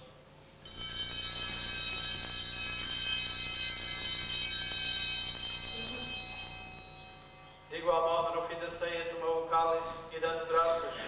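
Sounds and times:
small bells jingling: 0.6 - 8.0.

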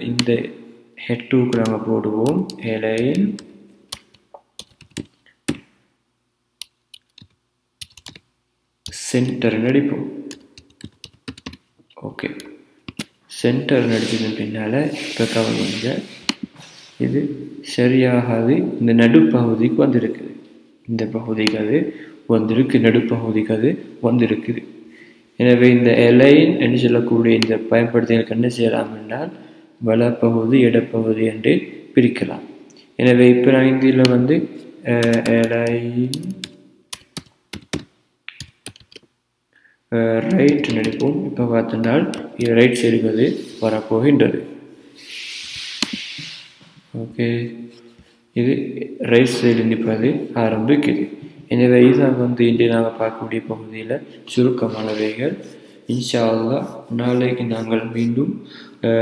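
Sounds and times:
keyboard typing clicks: 1.5 - 5.6, 6.6 - 9.4, 10.3 - 11.6, 35.0 - 39.0, 40.2 - 41.1.

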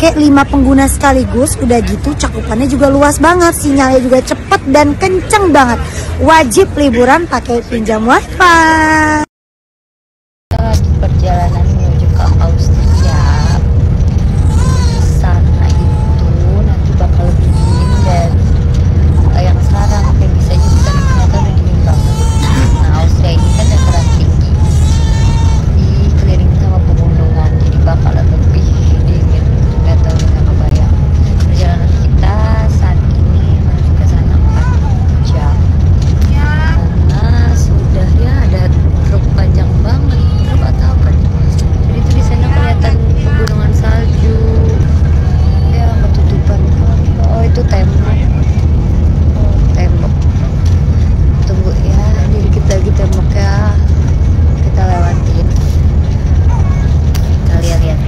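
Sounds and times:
bus rumbling: 0.0 - 9.3, 10.5 - 58.0
woman talking: 0.0 - 9.3, 10.5 - 48.3, 49.3 - 55.8, 57.2 - 58.0.

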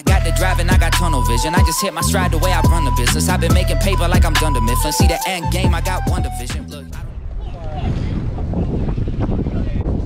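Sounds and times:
wind buffeting microphone: 6.8 - 10.0.

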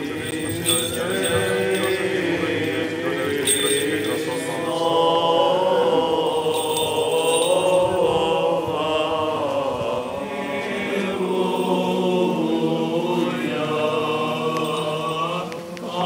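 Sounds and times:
voices chanting a slow hymn: 0.0 - 16.0.

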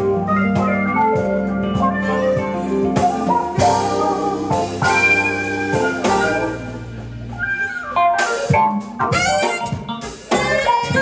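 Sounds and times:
live band playing: 0.0 - 11.0
saxophone lead bending a note: 1.7 - 8.3.

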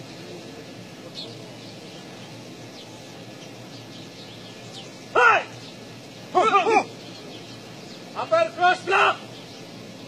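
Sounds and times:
faint distant voices: 0.0 - 10.0
small birds chirping: 0.0 - 10.0
steady low hiss: 0.0 - 10.0.

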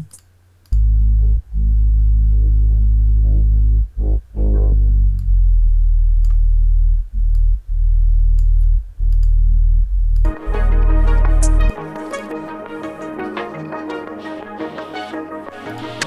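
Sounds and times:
deep bass notes: 0.7 - 13.2.

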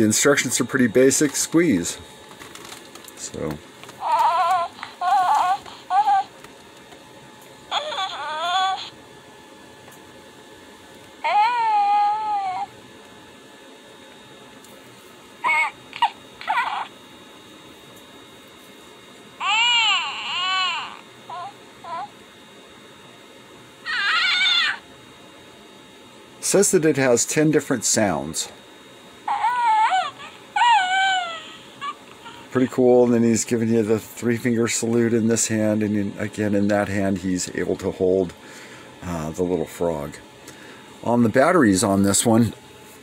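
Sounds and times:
toy baby coos and squeaks: 4.0 - 6.3, 7.7 - 8.9, 11.2 - 12.7, 15.4 - 16.9, 19.4 - 22.1, 23.9 - 24.8, 29.3 - 32.4.

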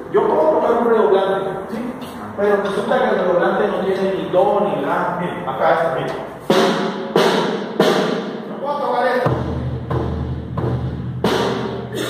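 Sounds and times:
snare drum strikes: 6.5 - 8.4.

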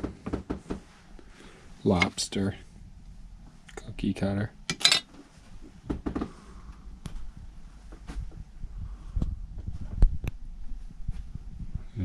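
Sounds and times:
handheld camera rumble: 5.4 - 12.0.

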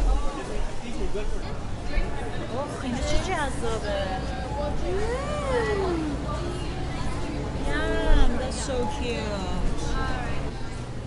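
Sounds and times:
murmur of busy market: 0.0 - 11.0.

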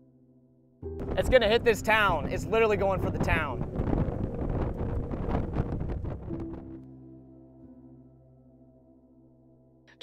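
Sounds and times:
soft music drone: 0.0 - 10.0
gusty wind on microphone: 0.9 - 6.8.

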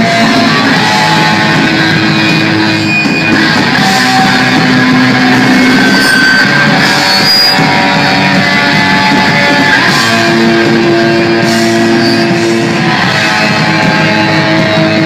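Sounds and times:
drum kit: 0.0 - 15.0
electric guitars: 0.0 - 15.0.

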